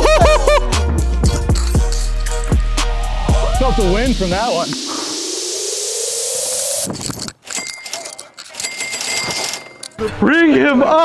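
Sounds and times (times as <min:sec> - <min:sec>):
rising whoosh: 0:02.0 - 0:07.1.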